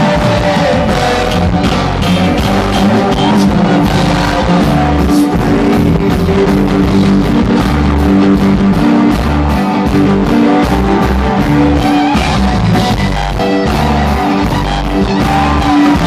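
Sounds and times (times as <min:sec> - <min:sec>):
string band playing: 0:00.0 - 0:16.0.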